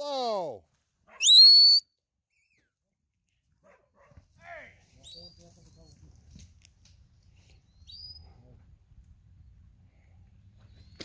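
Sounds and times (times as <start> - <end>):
sharp rising whistle: 1.2 - 1.8.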